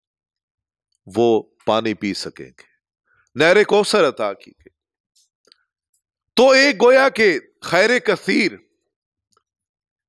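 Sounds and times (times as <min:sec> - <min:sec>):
man lecturing through microphone: 0:01.1 - 0:04.6, 0:06.4 - 0:08.7.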